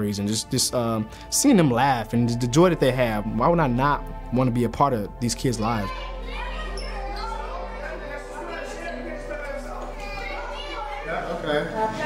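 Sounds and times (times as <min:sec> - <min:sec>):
children talking and playing: 0:05.2 - 0:12.0.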